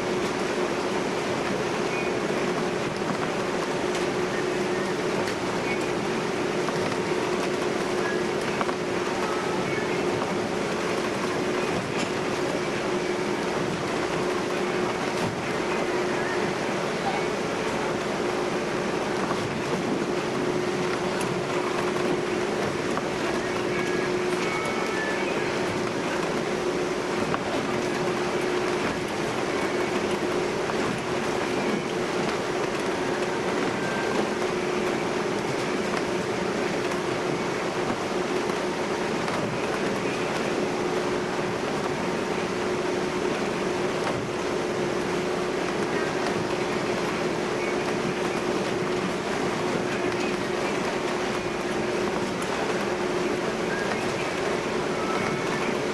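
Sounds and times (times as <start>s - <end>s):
constant humming tone: 0.0s - 55.9s
ferry engine and hull noise: 0.0s - 55.9s.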